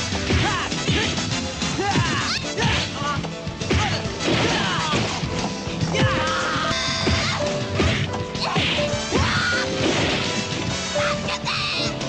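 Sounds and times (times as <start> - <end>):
background music: 0.0 - 12.0
punch and kick impacts: 3.6 - 6.2, 7.0 - 10.7.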